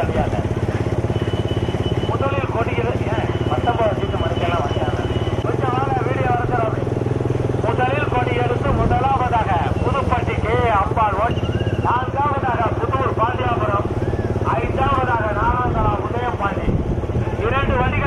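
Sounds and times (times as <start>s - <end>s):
motorcycle engines running: 0.0s - 18.0s.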